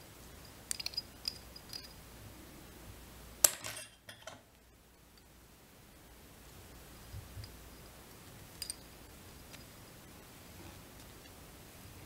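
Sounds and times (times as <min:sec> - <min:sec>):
metal tools clicking and clinking: 0:00.7 - 0:02.0, 0:03.4 - 0:04.4, 0:08.6 - 0:08.9.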